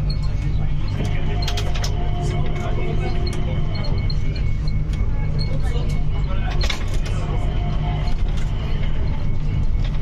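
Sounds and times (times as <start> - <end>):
train rumble: 0.0 - 10.0.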